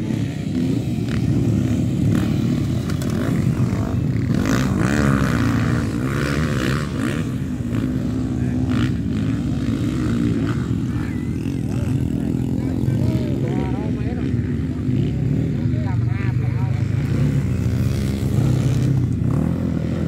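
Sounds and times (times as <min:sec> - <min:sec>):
dirt bike engine running: 0:00.0 - 0:20.0
faint voices: 0:00.0 - 0:20.0.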